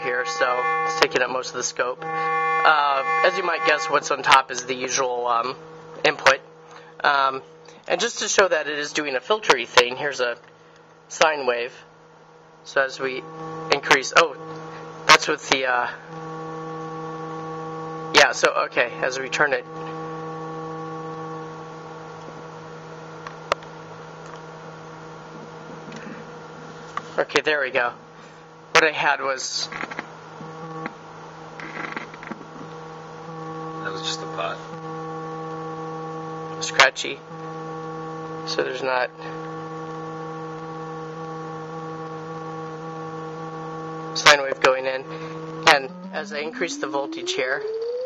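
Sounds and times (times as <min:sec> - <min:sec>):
low synthesizer tone: 0:00.0 - 0:05.0, 0:13.0 - 0:15.2, 0:39.1 - 0:48.0
low buzzy synthesizer tone: 0:00.0 - 0:08.6, 0:12.7 - 0:23.2, 0:30.4 - 0:31.0, 0:32.8 - 0:48.0.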